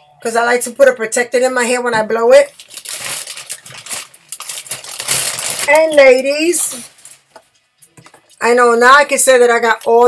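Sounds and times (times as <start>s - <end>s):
packaging rustling: 2.5s - 7.3s.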